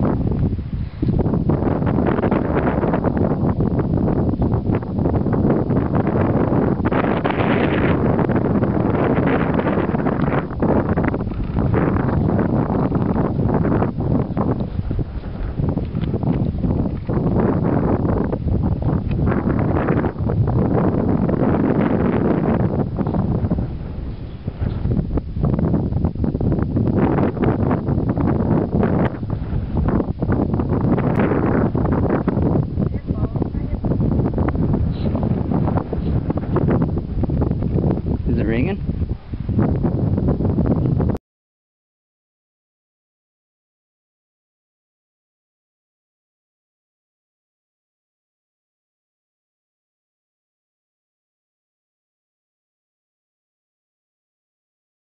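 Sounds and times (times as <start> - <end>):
wind buffeting microphone: 0.0 - 41.2.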